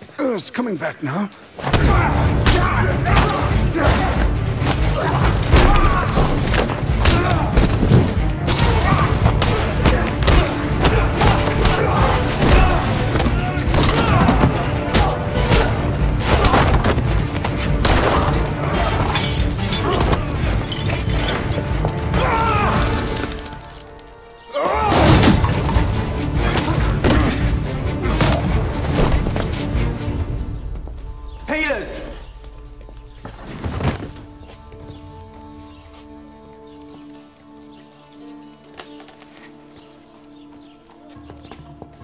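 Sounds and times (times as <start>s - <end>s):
film music: 0.0s - 42.0s
orchestral score: 0.0s - 42.0s
punches and thuds: 1.6s - 18.4s.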